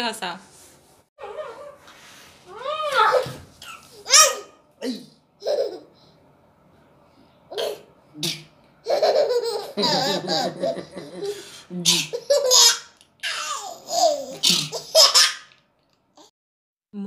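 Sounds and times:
toddler laughing: 5.4s - 5.9s, 8.9s - 11.4s, 12.0s - 15.5s.

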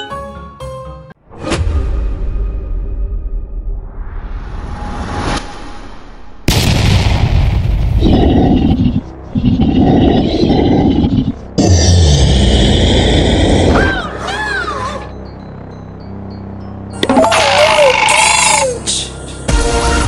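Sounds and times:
music: 0.0s - 6.5s, 7.2s - 20.0s
whoosh: 1.3s - 6.5s
loud boom: 6.4s - 8.2s
monster growling roar: 8.0s - 14.0s, 17.0s - 18.8s.

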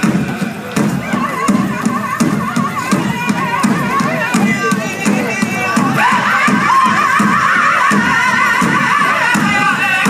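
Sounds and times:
large drum steady beat: 0.0s - 10.0s
singers' high wavering voices: 0.0s - 10.0s.

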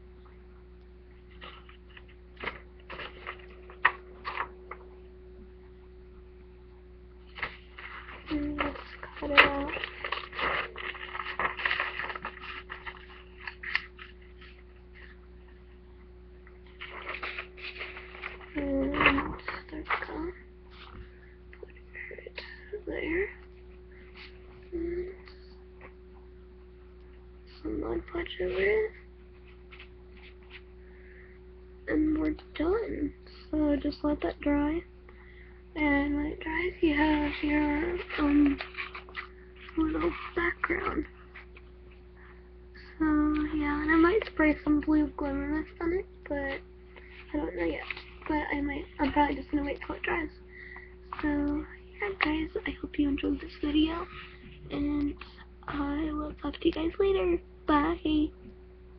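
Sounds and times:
steady low hum: 0.0s - 58.9s
paper crinkling: 1.2s - 4.8s, 7.3s - 15.7s, 16.6s - 21.8s, 28.2s - 30.7s, 36.4s - 42.0s, 46.4s - 50.4s, 51.0s - 55.3s.

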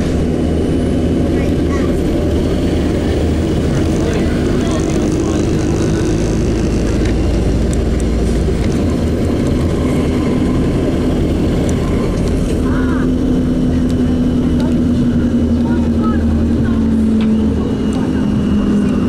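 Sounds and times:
bus engine hum: 0.0s - 19.0s
road noise: 0.0s - 19.0s.

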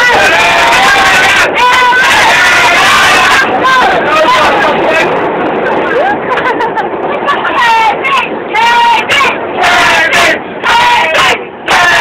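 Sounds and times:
people shouting drawn-out calls: 0.0s - 5.1s.

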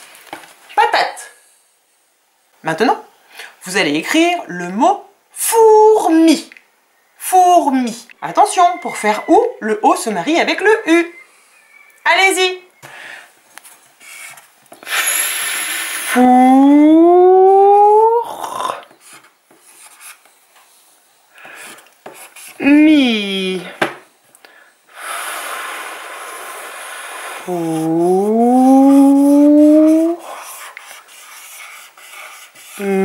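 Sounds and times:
marker scraping on whiteboard: 14.0s - 14.5s, 18.9s - 20.4s, 21.6s - 22.7s, 27.4s - 33.0s
marker squeak: 27.5s - 30.2s.

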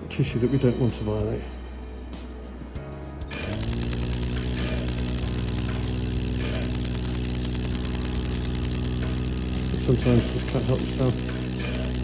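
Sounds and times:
laser electrical buzz pulsing: 3.2s - 12.0s.

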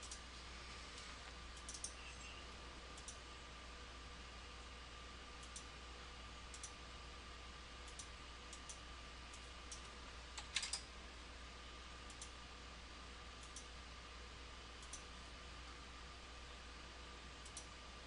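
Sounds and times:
computer mouse clicking: 0.0s - 0.2s, 1.6s - 2.0s, 3.0s - 3.2s, 5.4s - 5.7s, 6.5s - 6.8s, 7.8s - 10.9s, 12.1s - 12.4s, 13.4s - 13.7s, 14.8s - 15.1s, 17.4s - 17.7s
faint electrical hum: 0.0s - 18.0s.

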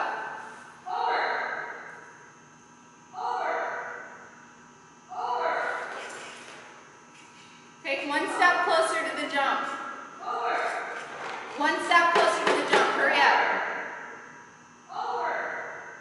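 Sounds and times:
person calling in echoing hall: 0.0s - 2.0s.

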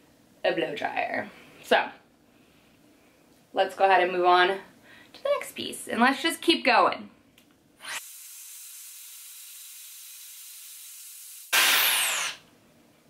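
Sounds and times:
air styler blowing: 11.4s - 12.4s
loud air blast with falling whine: 11.5s - 12.4s.

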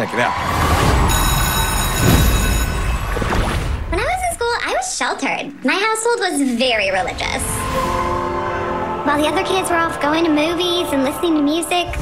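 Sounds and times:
high glittering shimmer of tones: 1.1s - 3.2s.

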